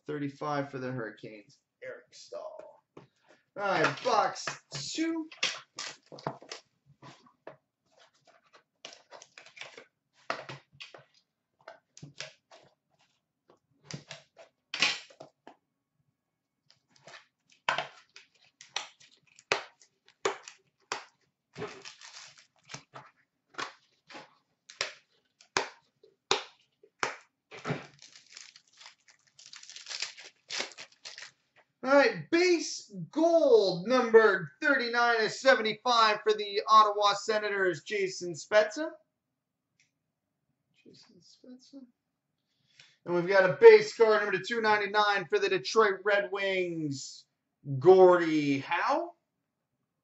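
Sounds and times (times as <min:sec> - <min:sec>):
shrink wrap crinkling and tearing: 0:05.4 - 0:06.6, 0:16.8 - 0:25.6, 0:27.7 - 0:31.6.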